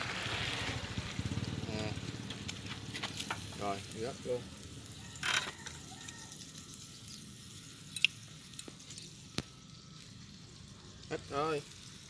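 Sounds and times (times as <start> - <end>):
cockles sizzling on a grill: 0.0 - 12.0.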